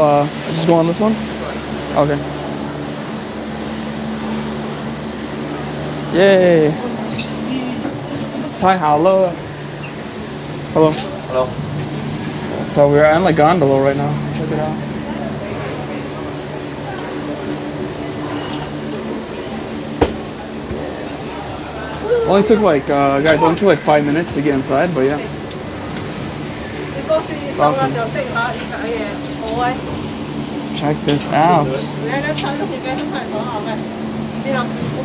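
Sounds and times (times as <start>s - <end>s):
lift machinery humming: 0.0s - 35.0s.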